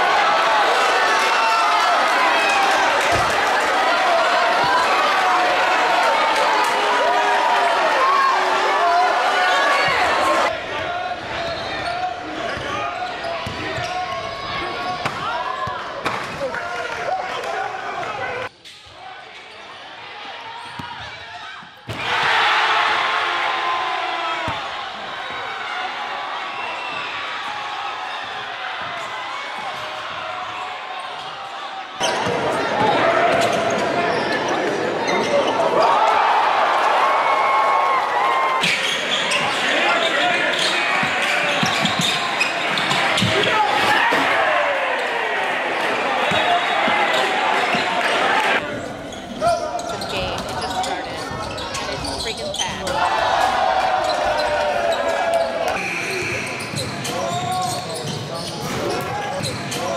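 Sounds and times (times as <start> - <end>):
crowd noise: 0.0 - 59.9
voices: 46.2 - 59.9.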